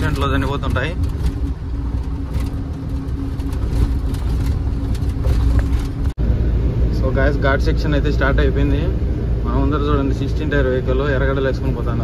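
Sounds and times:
light rattles: 0.0s - 6.1s
truck diesel engine drone: 0.0s - 12.0s.

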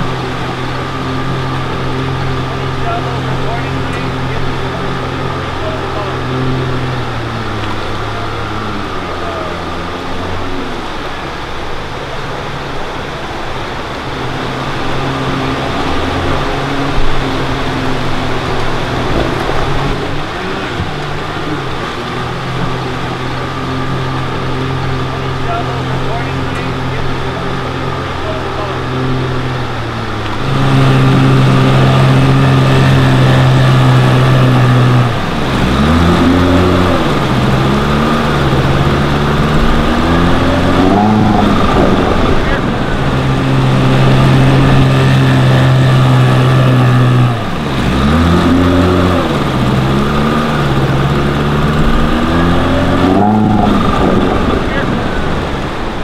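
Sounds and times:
outboard motor running: 0.0s - 56.0s.

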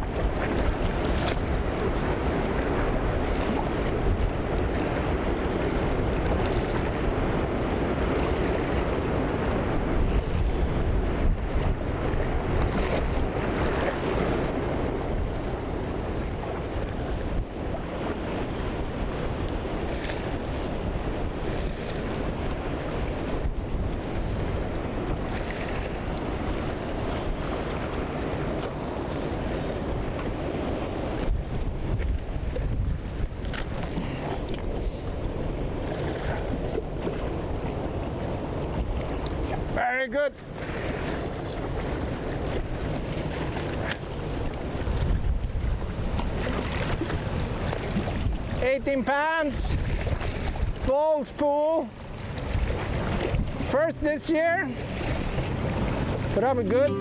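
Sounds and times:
wind rumbling on microphone: 0.0s - 39.8s, 40.4s - 51.0s, 51.8s - 57.0s
river rushing past rocks: 53.0s - 57.0s.

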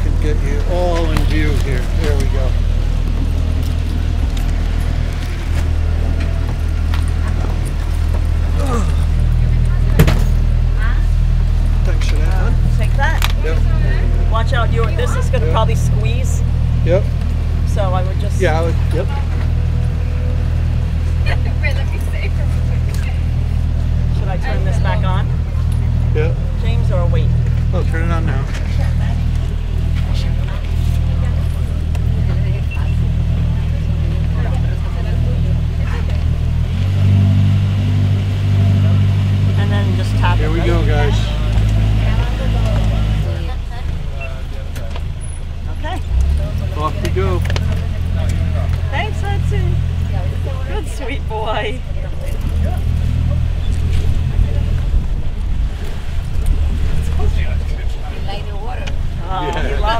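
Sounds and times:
boat engine droning: 0.0s - 59.9s
faint voices: 0.0s - 59.9s.

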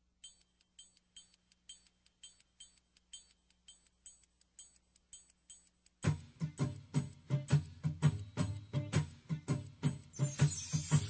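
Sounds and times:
clock-like ticking: 0.0s - 11.0s.

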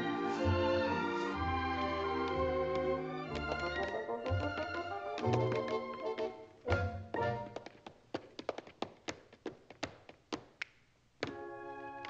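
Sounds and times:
tap dance clicks: 2.3s - 11.4s.

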